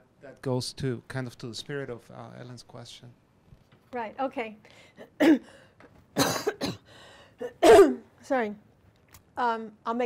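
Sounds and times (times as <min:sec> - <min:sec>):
woman coughing: 0:05.0 - 0:05.5, 0:06.2 - 0:08.1.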